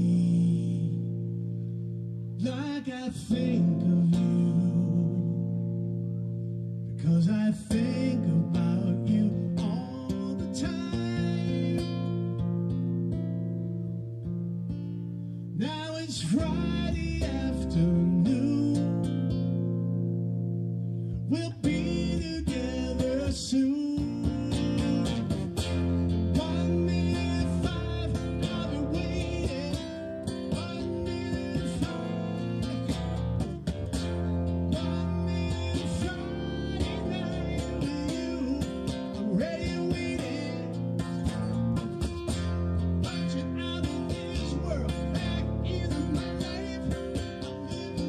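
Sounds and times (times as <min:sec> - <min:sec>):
person singing: 0:00.0 - 0:01.2, 0:02.4 - 0:05.6, 0:07.0 - 0:12.4, 0:15.6 - 0:19.6, 0:21.2 - 0:48.0
acoustic-electric guitar strummed: 0:00.0 - 0:48.0.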